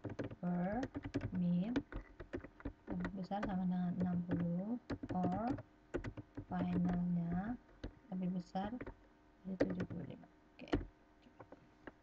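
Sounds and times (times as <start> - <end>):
computer keyboard typing: 0.0 - 10.9.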